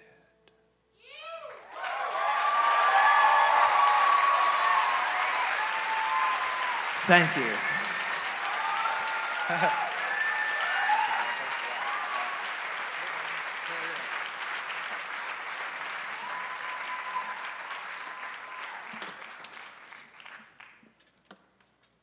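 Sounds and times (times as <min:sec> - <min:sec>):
audience applauding: 0:01.5 - 0:21.1.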